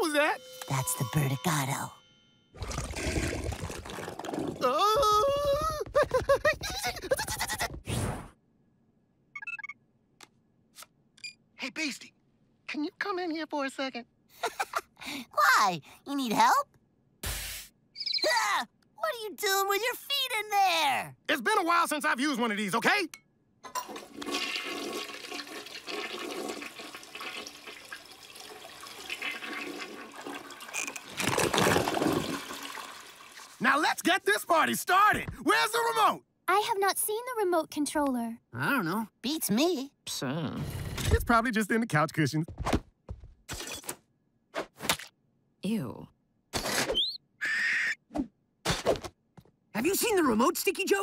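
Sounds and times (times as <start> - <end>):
cartoon toilet flushing: 2.6 - 4.7, 23.7 - 34.2
cartoon bird chirp: 18.0 - 18.5, 46.9 - 48.0.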